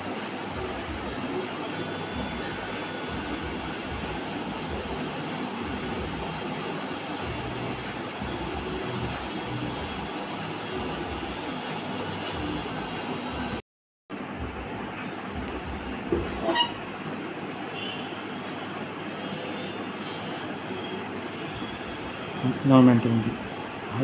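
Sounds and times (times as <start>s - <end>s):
steady machine whirring: 1.6s - 13.6s.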